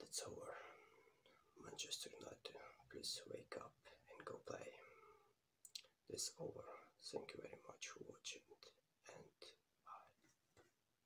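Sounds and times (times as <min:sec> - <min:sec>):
man whispering: 0:00.0 - 0:10.3.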